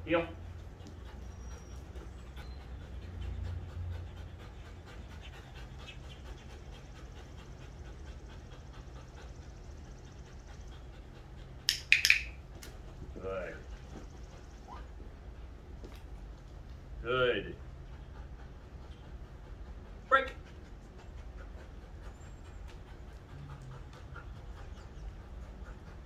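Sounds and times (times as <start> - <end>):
dog panting rapidly: 0.0 - 26.0.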